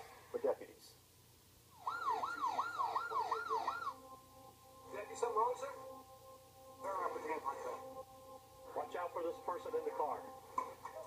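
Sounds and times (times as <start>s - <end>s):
police siren yelping: 1.8s - 4.2s.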